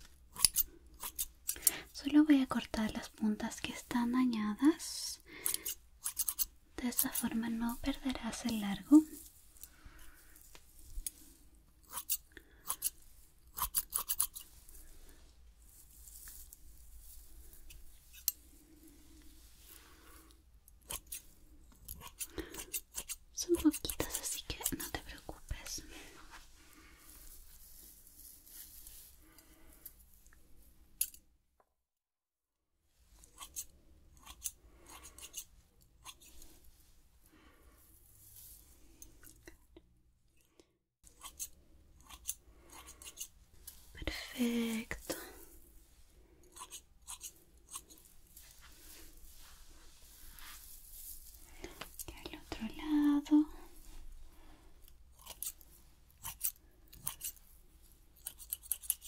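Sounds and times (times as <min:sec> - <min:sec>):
scissors snipping hair: 0:00.3 - 0:01.9, 0:05.4 - 0:08.6, 0:11.8 - 0:14.5, 0:20.7 - 0:21.2, 0:21.8 - 0:25.0, 0:33.3 - 0:36.4, 0:41.2 - 0:43.3, 0:46.5 - 0:48.0, 0:55.2 - 0:55.6, 0:56.2 - 0:57.4, 0:58.2 - 0:59.0.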